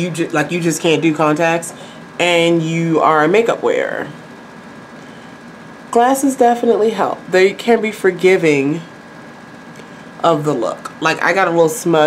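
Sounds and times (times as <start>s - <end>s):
woman speaking: 0.0s - 4.3s, 5.9s - 9.0s, 10.2s - 12.0s.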